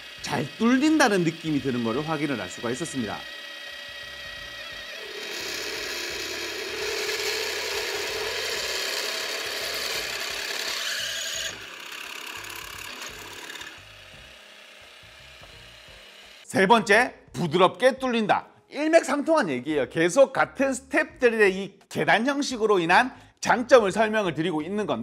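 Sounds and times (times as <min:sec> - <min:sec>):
drill press cutting metal: 0:00.0 - 0:16.5.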